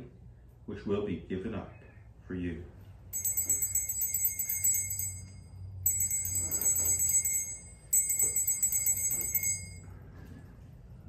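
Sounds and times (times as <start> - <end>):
small bells jingling: 3.1 - 10.0.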